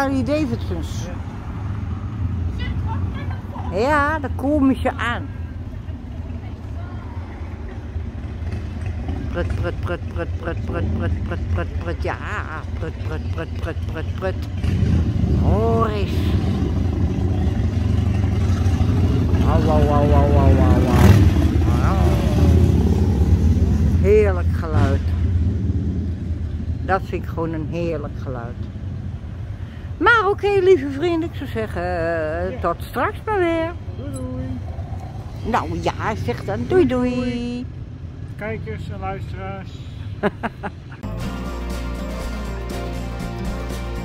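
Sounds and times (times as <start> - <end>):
motorcycle engines burbling: 0.0 - 41.1
motorcycle engine idling: 5.3 - 22.7.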